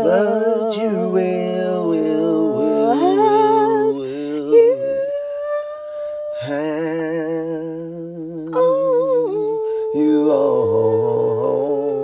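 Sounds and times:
two people singing and humming: 0.0s - 12.0s.

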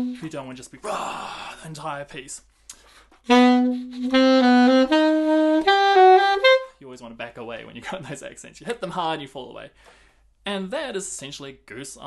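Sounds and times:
alto saxophone phrase: 0.0s - 0.3s, 3.3s - 6.7s.

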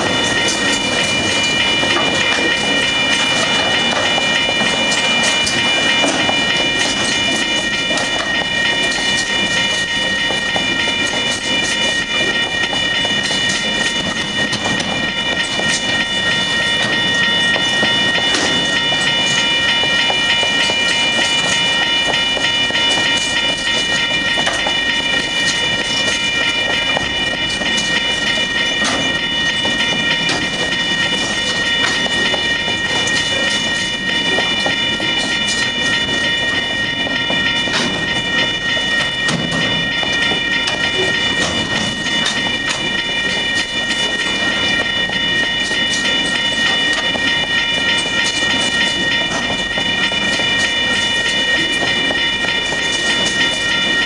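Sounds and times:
steady high-pitched tones: 0.0s - 54.0s.

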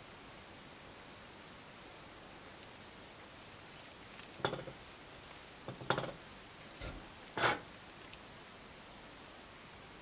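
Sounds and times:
metal fork scraping ceramic plate: 7.4s - 7.6s.

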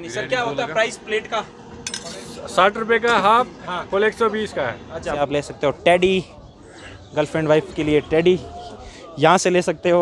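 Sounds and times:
metal spoon and dishes clinking: 1.8s - 2.3s
sharp clatter of dishes: 1.8s - 2.3s.

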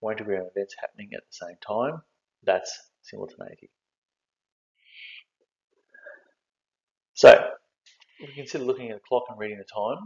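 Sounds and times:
man speaking: 0.0s - 3.6s, 5.0s - 5.2s, 7.2s - 7.6s, 8.2s - 10.0s
faint breath: 5.9s - 6.3s.

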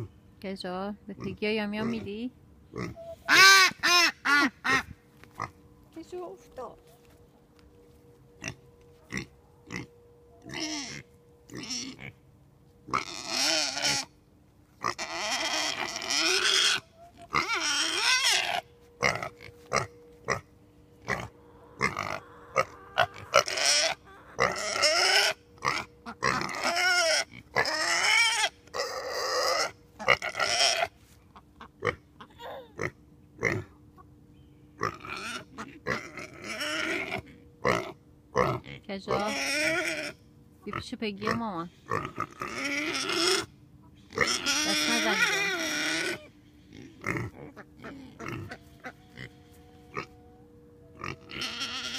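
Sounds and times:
ducks quacking: 2.8s - 5.5s, 21.1s - 28.2s, 40.7s - 50.1s.

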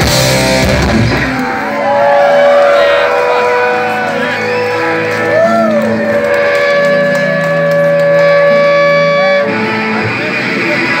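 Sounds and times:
electric guitars bending notes: 0.0s - 11.0s
punk band playing live: 0.0s - 11.0s.

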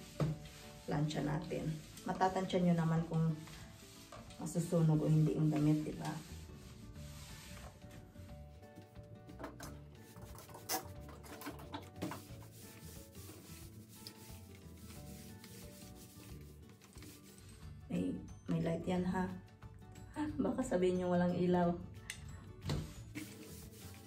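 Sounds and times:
iron sliding over fabric: 0.0s - 7.8s, 12.1s - 17.4s, 22.9s - 24.0s.

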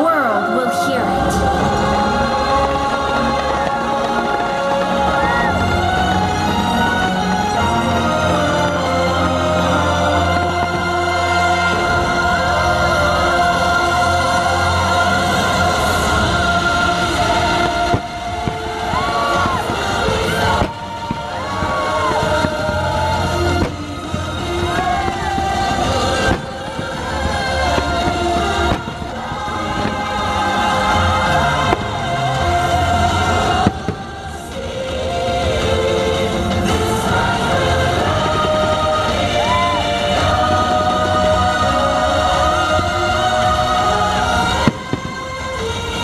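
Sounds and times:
orchestral music with choir: 0.0s - 46.0s
fireworks bursting: 0.7s - 46.0s.

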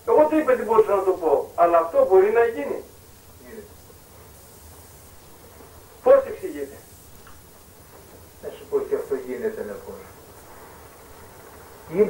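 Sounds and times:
faint recording hiss: 0.0s - 12.0s
man speaking: 0.1s - 3.8s, 6.0s - 6.9s, 8.4s - 10.2s.

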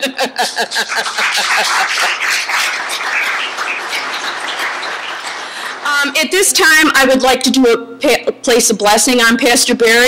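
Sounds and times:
people laughing: 0.0s - 5.8s
crowd clapping: 0.5s - 6.5s.

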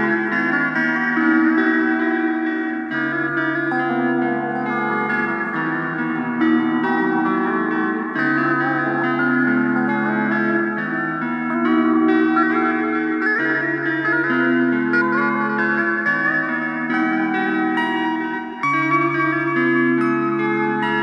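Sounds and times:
rock blues guitar with echo: 0.0s - 21.0s.

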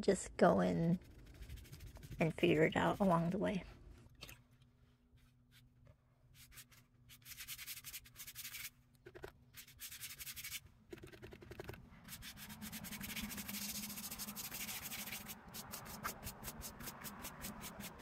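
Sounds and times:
paintbrush scrubbing on paper: 1.0s - 3.4s, 6.3s - 8.7s, 9.5s - 18.0s.

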